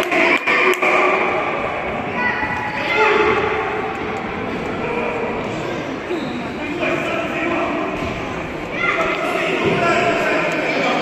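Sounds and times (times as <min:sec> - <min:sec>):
distant voices in a hall: 0:00.0 - 0:11.0.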